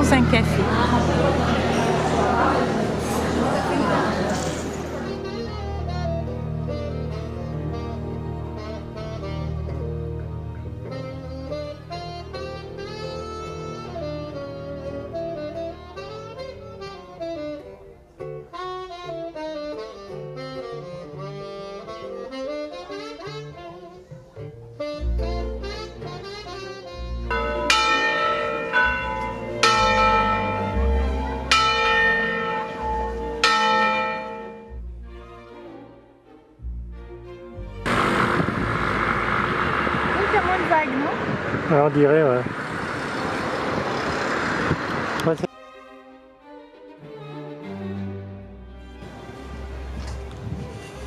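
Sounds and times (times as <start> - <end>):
band playing accented chords: 0.0 - 35.8
saxophone solo: 4.1 - 28.6
bass and guitar: 4.2 - 15.2, 23.5 - 34.1, 36.6 - 42.5.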